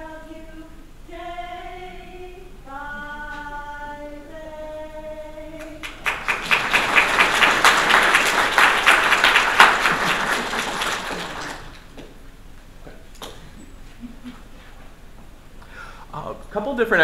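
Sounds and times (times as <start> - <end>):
audience applause: 5.8 - 11.9.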